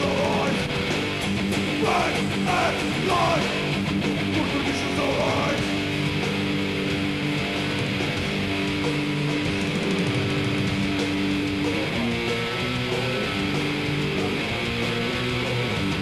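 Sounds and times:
heavy metal band playing live: 0:00.0 - 0:16.0.

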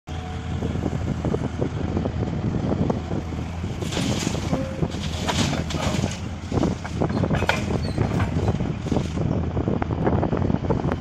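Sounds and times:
diesel engines rumbling: 0:00.1 - 0:11.0.

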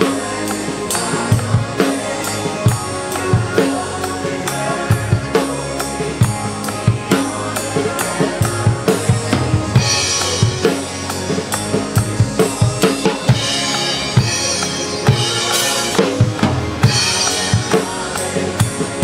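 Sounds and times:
drum kit groove: 0:00.0 - 0:19.0
worship song backing track: 0:00.0 - 0:19.0.

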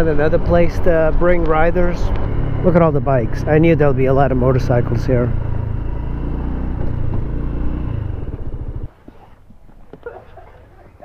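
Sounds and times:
scooter engine running: 0:01.7 - 0:09.0.

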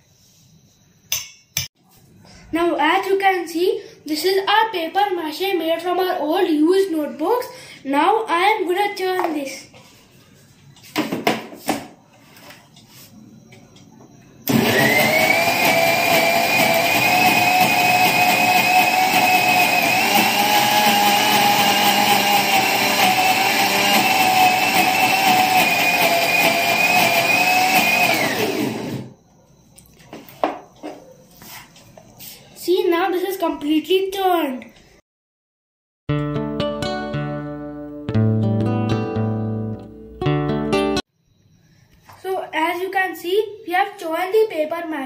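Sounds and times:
mixer grinder motor whine: 0:14.4 - 0:29.2.

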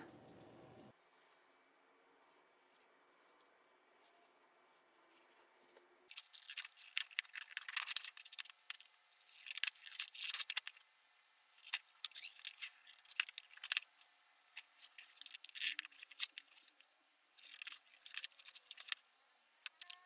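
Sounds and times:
scissors cutting paper: 0:06.1 - 0:10.8, 0:11.6 - 0:13.9.

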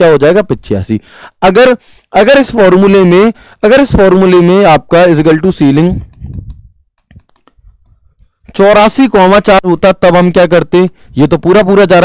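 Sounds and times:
stylus tapping on a screen: 0:06.0 - 0:08.0.

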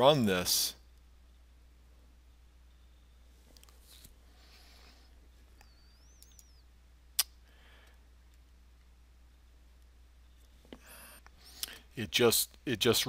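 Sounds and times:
steady low hum: 0:00.0 - 0:13.0
faint high chirp: 0:02.6 - 0:03.4, 0:05.5 - 0:06.8.

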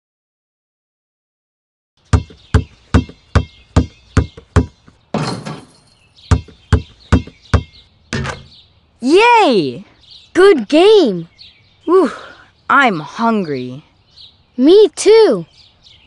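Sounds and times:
basketball bouncing on pavement: 0:02.0 - 0:08.6.

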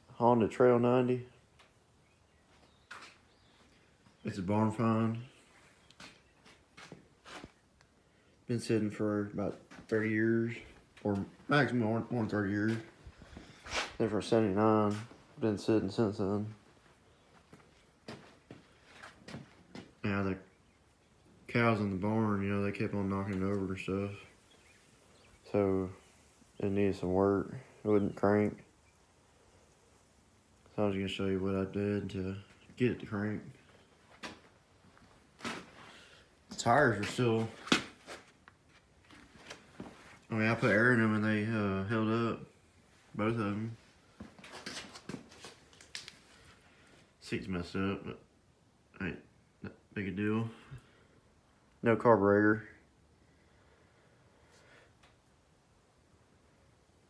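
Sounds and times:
low room noise: 0:00.0 - 0:57.0.

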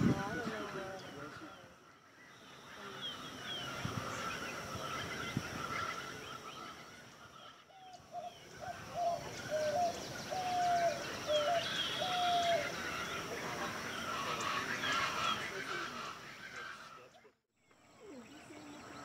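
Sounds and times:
small birds chirping: 0:00.0 - 0:19.0
bird cooing: 0:02.8 - 0:17.1.

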